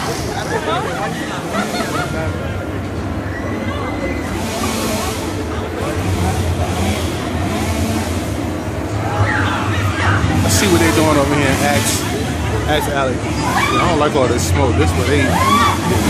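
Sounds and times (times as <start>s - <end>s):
crowd chattering: 0.0s - 16.0s
steady low hum: 0.0s - 16.0s.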